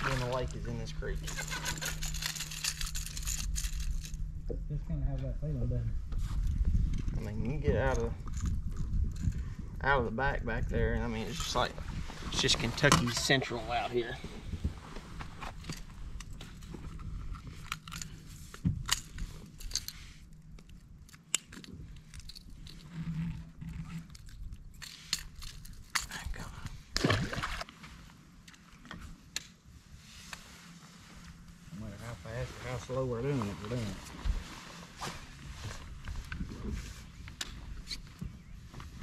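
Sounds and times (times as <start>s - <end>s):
fish handling clicks and rustles: 1.2s - 4.2s, 15.3s - 26.3s.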